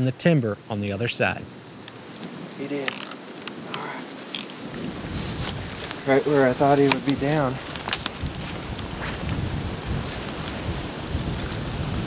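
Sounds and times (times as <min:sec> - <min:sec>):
low wind rumble on microphone: 0:01.3 - 0:12.0
twigs snapping: 0:01.8 - 0:12.0
footsteps through dry brush: 0:02.1 - 0:12.0.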